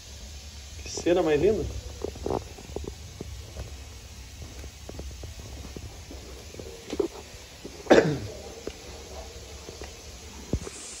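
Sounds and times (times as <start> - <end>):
fire low rumble: 0.0 - 11.0
firewood crackling and popping: 0.0 - 11.0.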